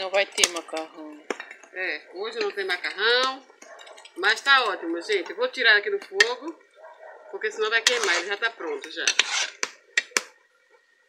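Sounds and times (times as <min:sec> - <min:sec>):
metal ladle scraping pot: 0:00.0 - 0:10.4
ladle clinking on pot: 0:02.3 - 0:05.4, 0:07.8 - 0:10.2.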